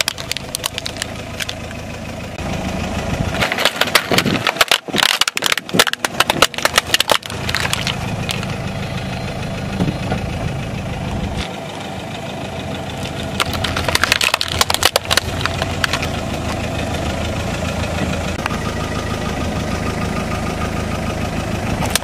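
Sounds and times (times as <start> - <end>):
plastic toys cracking under tyre: 0.0 - 1.8, 3.4 - 8.6, 13.0 - 16.7
car engine idling: 0.0 - 22.0.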